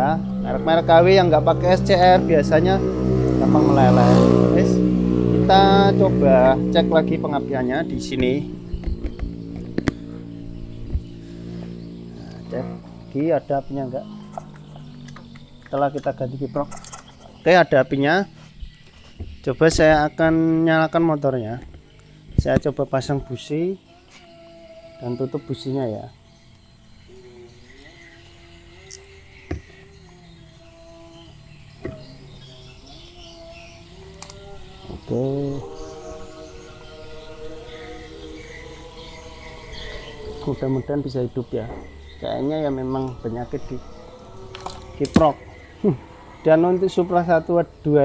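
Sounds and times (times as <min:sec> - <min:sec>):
distant person singing: 0:00.0 - 0:48.0
steady low hum: 0:00.0 - 0:48.0
sharp clicks and dull knocks: 0:08.7 - 0:10.0.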